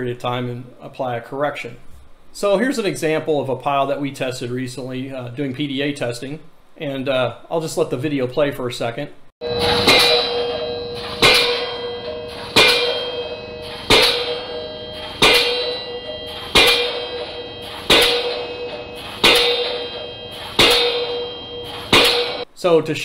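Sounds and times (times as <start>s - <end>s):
pile hammer striking steel: 9.4s - 22.5s.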